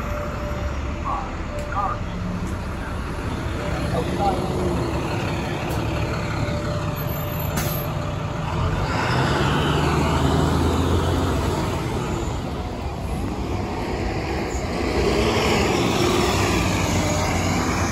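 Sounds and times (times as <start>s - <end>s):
bus engine accelerating: 0.0s - 17.9s.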